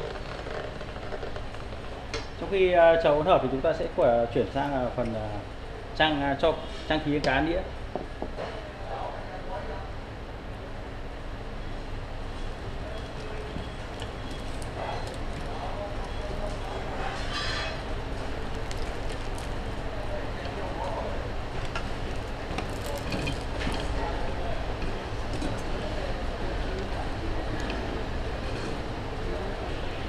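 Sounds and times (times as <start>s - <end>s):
faint voices: 12.6s - 30.0s.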